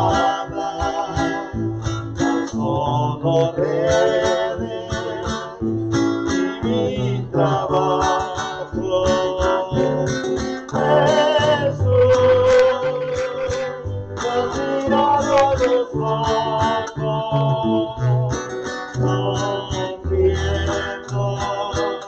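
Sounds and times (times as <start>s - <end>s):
man singing with vibrato: 0.0s - 22.0s
strummed acoustic guitar: 0.0s - 22.0s.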